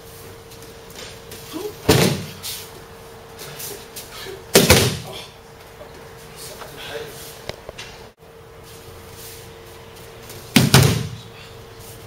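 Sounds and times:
body thudding on mat: 0:10.5 - 0:11.2.

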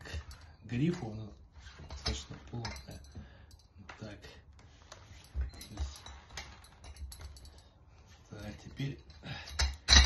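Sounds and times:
metal clinks and taps: 0:01.9 - 0:04.2, 0:05.1 - 0:07.8.

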